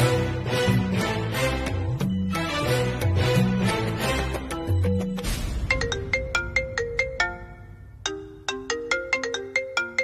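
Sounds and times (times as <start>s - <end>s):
phone ringtone melody: 4.5s - 10.0s.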